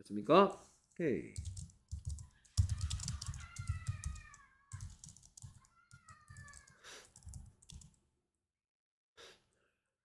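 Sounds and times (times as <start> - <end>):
typing on computer keyboard: 1.4 - 8.0.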